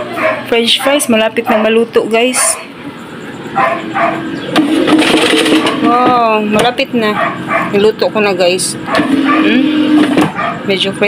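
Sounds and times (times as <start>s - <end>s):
air fryer fan whirring: 0.0s - 11.0s.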